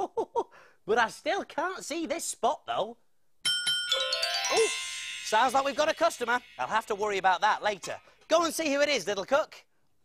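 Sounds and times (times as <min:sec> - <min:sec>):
doorbell chime: 0:03.5 - 0:07.6.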